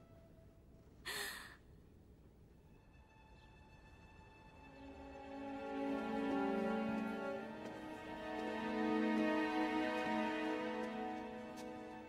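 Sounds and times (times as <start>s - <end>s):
woman sighing: 1.0s - 1.6s
soft music: 2.5s - 12.0s.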